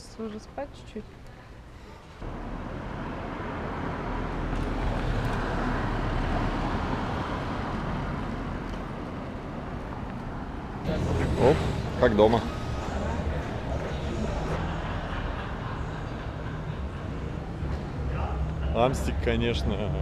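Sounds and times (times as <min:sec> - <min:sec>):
low traffic rumble: 0:00.0 - 0:20.0
motor vehicle passing: 0:02.2 - 0:20.0.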